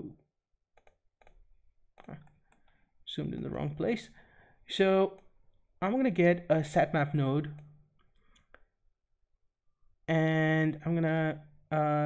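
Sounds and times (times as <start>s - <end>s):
computer mouse clicking: 0.8s - 1.4s.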